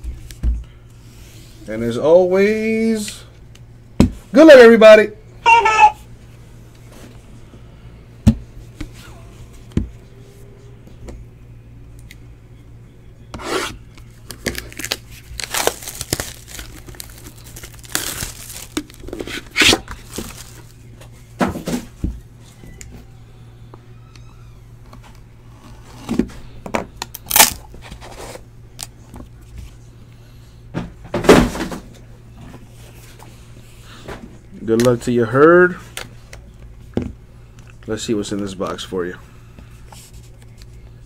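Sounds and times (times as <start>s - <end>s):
faint low hum: 0.0s - 41.0s
plastic shrink wrap tearing: 14.2s - 20.8s, 27.1s - 27.6s.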